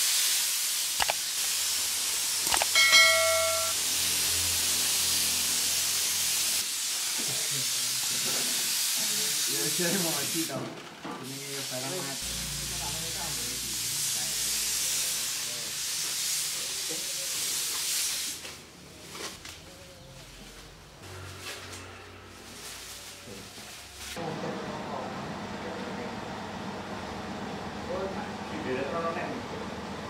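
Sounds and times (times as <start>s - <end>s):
loud steady hiss: 0.0s - 10.6s, 11.3s - 18.5s.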